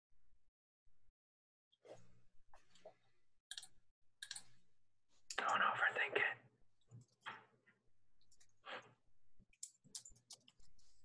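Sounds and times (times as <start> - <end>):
breathing: 8.6 - 9.0.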